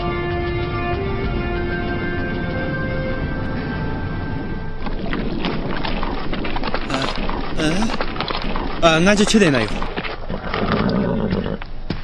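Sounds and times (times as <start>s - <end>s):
background music: 0.0s - 4.8s
horse whinnying: 10.3s - 11.7s.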